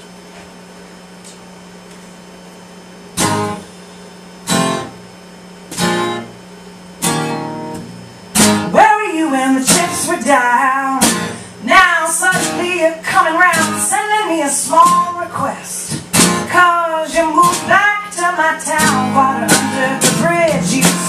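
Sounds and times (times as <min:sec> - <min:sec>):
room hum: 0:00.0 - 0:21.0
acoustic guitar strumming: 0:03.2 - 0:03.7, 0:04.4 - 0:05.1, 0:05.7 - 0:06.4, 0:07.0 - 0:21.0
woman singing: 0:08.7 - 0:21.0.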